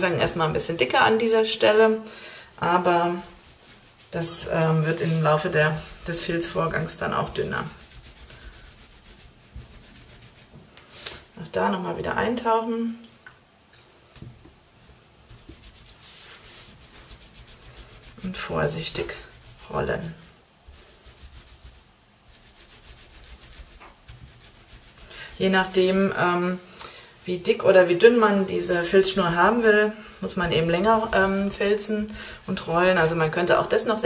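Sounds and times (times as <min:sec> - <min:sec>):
palms rubbing wet wool on towel: 0:00.0 - 0:10.7, 0:14.8 - 0:34.0.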